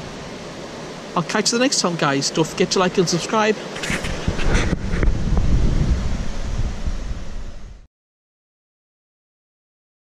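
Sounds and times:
wind rumbling on microphone: 2.5 - 7.9.

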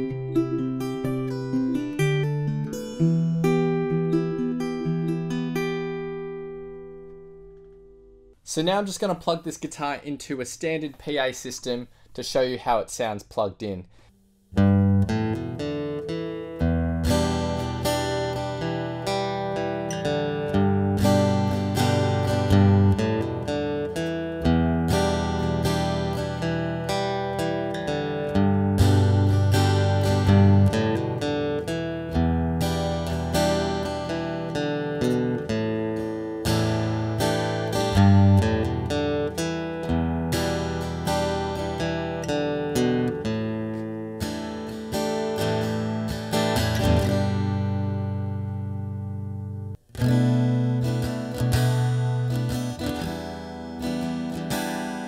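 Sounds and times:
fingerpicked acoustic guitar: 0.0 - 8.4, 14.1 - 55.0.

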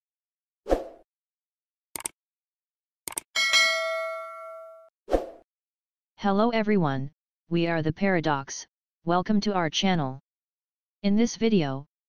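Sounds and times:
sharp clicks: 2.0 - 2.2, 3.1 - 3.3
notification bell ding: 3.4 - 4.9.

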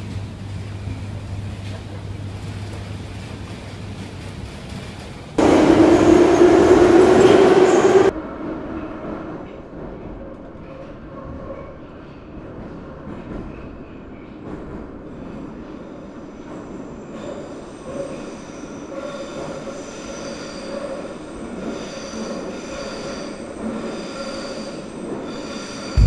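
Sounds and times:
metro train rumble: 0.0 - 26.0.

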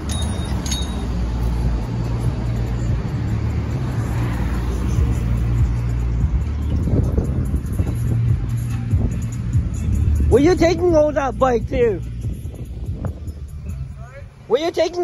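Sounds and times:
street traffic: 0.0 - 15.0
vehicle engine rumbling: 0.0 - 15.0.

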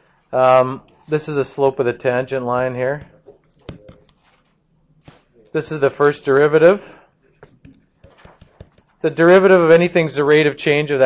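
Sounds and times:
stylus tapping on tablet screen: 2.9 - 4.3, 7.4 - 9.0.

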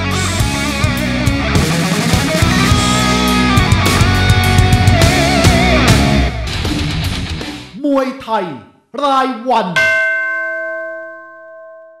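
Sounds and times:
bell-like chime: 9.8 - 12.0.

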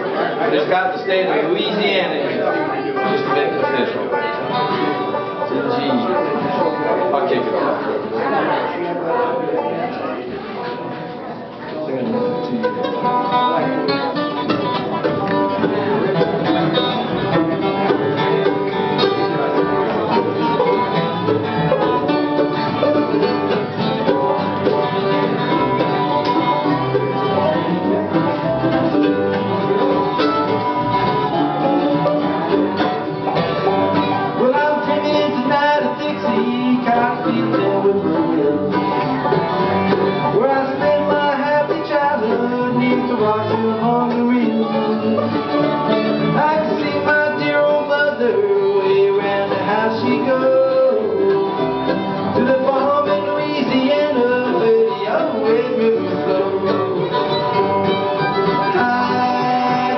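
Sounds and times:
bluegrass band playing: 0.0 - 59.9.

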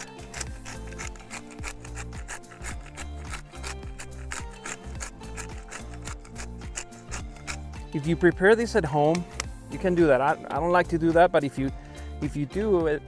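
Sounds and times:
pepper mill grinding: 0.0 - 7.8.

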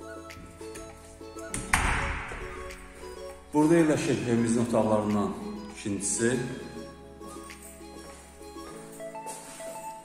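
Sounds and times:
background music sustained notes: 0.0 - 10.0.

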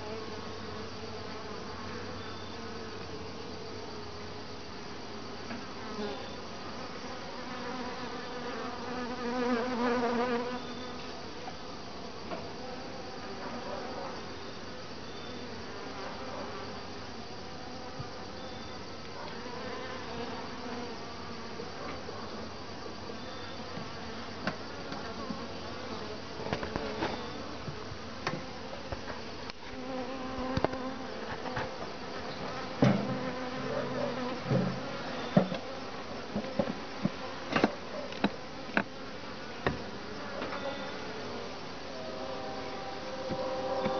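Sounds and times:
honeybees buzzing: 0.0 - 43.9.

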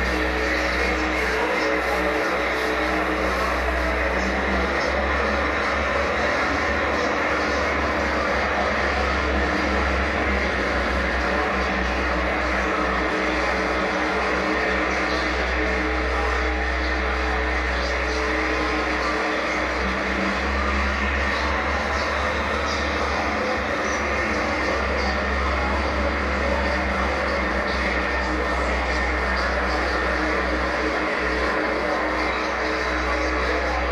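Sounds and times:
deep low drone: 0.0 - 33.9
wall of distorted noise: 0.0 - 33.9.

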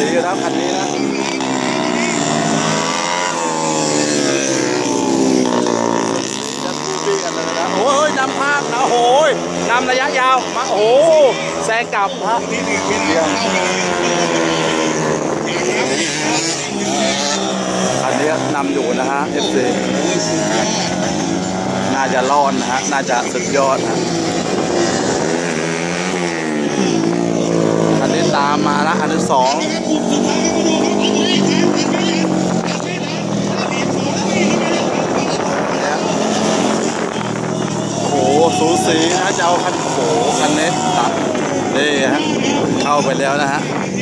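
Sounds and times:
racing motorcycle engines: 0.0 - 44.0.

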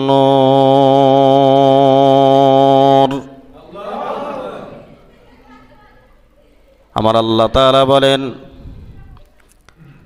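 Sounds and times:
man chanting recitation: 0.0 - 4.8, 6.9 - 8.6.

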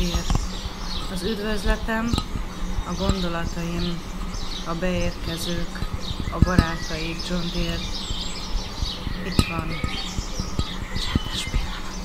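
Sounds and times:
birds chirping: 0.0 - 12.0
steady low hum: 0.0 - 12.0.

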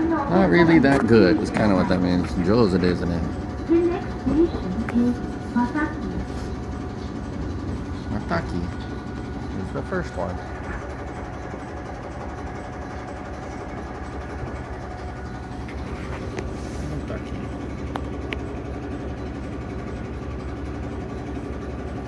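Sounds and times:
train engine rumbling: 0.0 - 22.0.

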